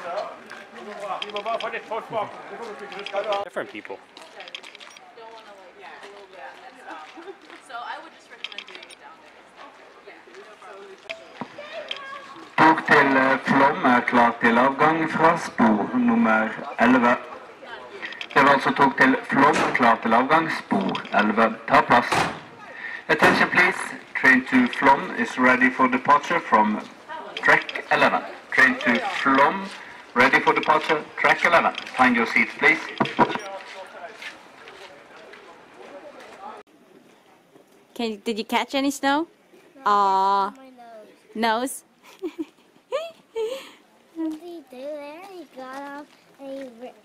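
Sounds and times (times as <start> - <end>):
faint voices of people: 0.0 - 25.8, 26.4 - 37.8
outdoor hubbub: 0.0 - 47.0.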